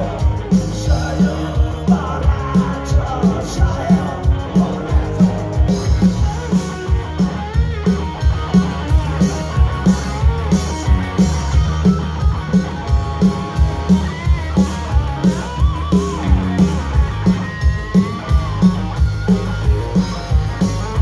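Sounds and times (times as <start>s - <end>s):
electric guitars: 0.0s - 21.0s
rock band playing: 0.0s - 21.0s
steady drum beat: 0.0s - 21.0s
lead guitar bending notes: 3.8s - 21.0s.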